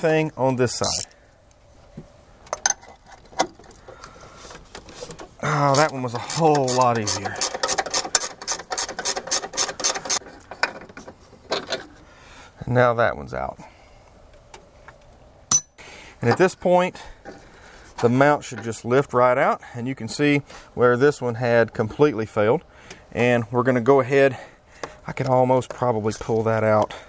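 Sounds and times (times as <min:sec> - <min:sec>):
metal wrench clinking on bolt: 0:00.8 - 0:01.1, 0:15.5 - 0:15.7.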